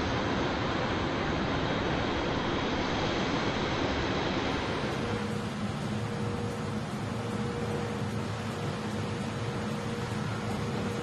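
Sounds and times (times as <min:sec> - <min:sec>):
low hum: 0:00.0 - 0:11.0.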